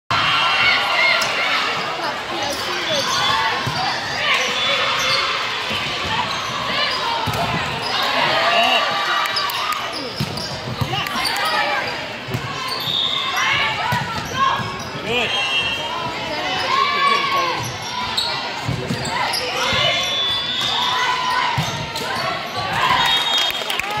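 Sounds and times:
people shouting and calling out: 0:00.1 - 0:10.1, 0:10.9 - 0:23.2.

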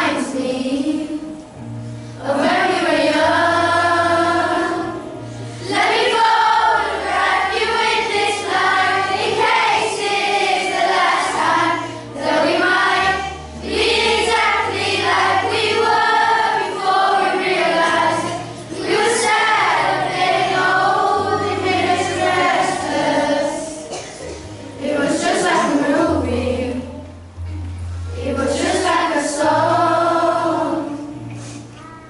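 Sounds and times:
children's choir singing: 0:00.0 - 0:27.4, 0:28.1 - 0:31.6
musical accompaniment with bass: 0:00.0 - 0:32.0.

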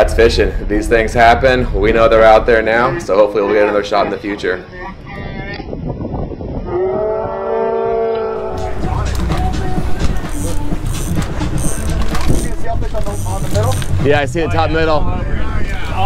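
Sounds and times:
boat engine rumble: 0:00.0 - 0:16.0
wind: 0:00.0 - 0:16.0.

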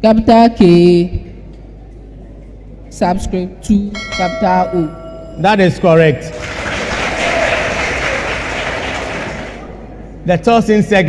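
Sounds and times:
audience applauding: 0:06.3 - 0:09.6.

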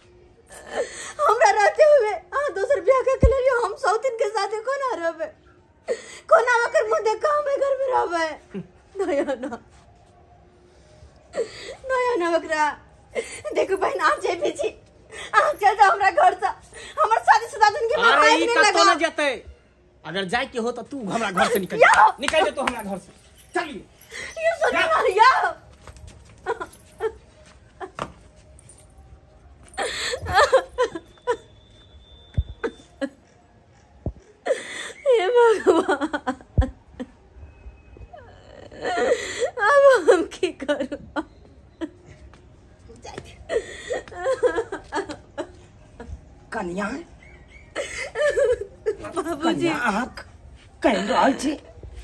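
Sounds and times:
woman sobbing: 0:00.5 - 0:02.8, 0:11.3 - 0:18.6, 0:24.0 - 0:25.6, 0:26.4 - 0:28.0, 0:29.7 - 0:31.5, 0:34.4 - 0:37.2, 0:38.2 - 0:42.3, 0:43.3 - 0:46.2, 0:47.3 - 0:50.2.

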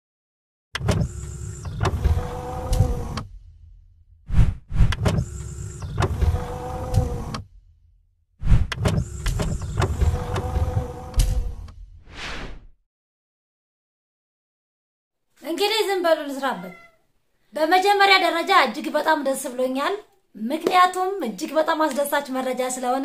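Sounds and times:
mechanical whirring with clicks: 0:00.8 - 0:03.4, 0:04.8 - 0:07.5, 0:08.6 - 0:11.8.

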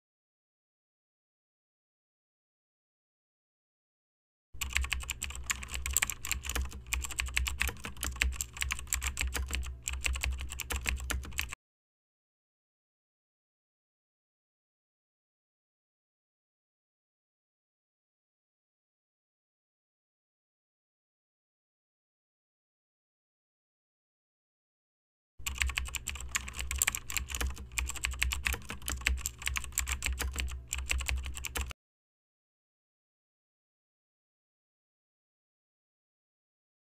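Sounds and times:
keyboard key clicks: 0:04.6 - 0:11.6, 0:25.4 - 0:31.7
steady low hum: 0:25.4 - 0:31.7.

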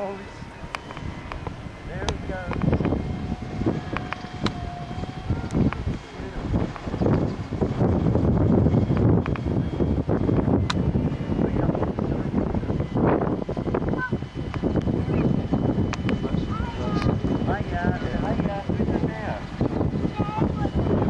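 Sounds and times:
model helicopter flying overhead: 0:00.0 - 0:21.0
wind buffeting microphone: 0:00.0 - 0:21.0.

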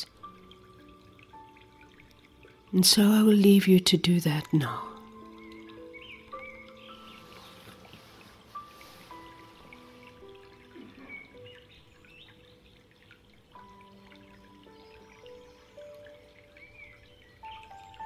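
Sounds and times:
faint water trickle: 0:00.0 - 0:18.0
slow background music: 0:00.0 - 0:18.0
bird chirps: 0:05.4 - 0:07.7, 0:10.7 - 0:12.8.

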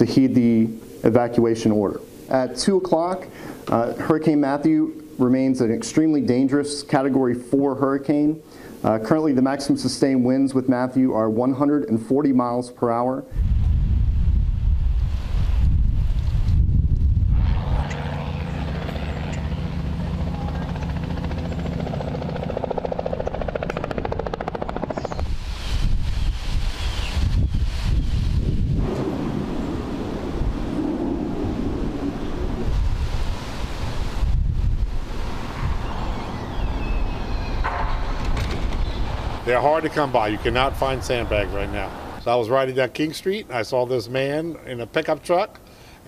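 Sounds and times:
low outdoor rumble: 0:13.6 - 0:24.9.

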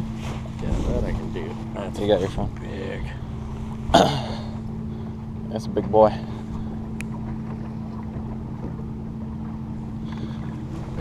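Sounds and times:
boat motor hum: 0:00.0 - 0:11.0.

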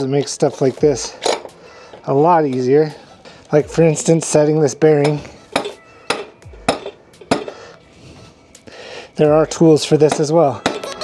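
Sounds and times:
hammer tapping metal: 0:05.0 - 0:07.6.

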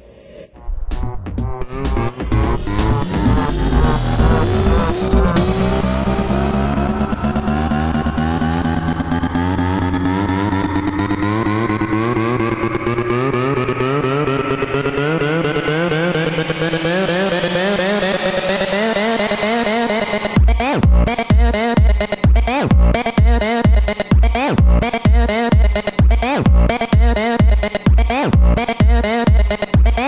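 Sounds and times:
wobbling synth tones rising: 0:01.2 - 0:21.1.

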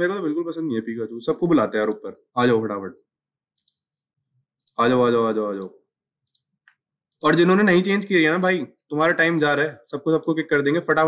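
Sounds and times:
man talking: 0:00.0 - 0:03.0, 0:04.8 - 0:05.8, 0:07.2 - 0:11.0
computer mouse clicks: 0:03.5 - 0:03.9, 0:04.6 - 0:04.9, 0:05.5 - 0:07.4, 0:10.1 - 0:10.4.

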